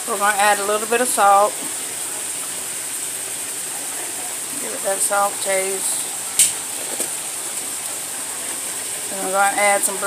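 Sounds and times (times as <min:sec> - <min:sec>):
chicken deep-frying in grease: 0:00.0 - 0:10.0
pot of water boiling: 0:00.0 - 0:10.0.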